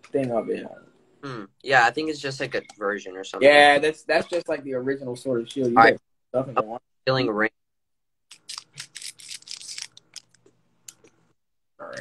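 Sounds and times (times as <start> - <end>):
scissors snipping foil wrapper: 8.3 - 10.3
foil crinkling: 8.4 - 10.4.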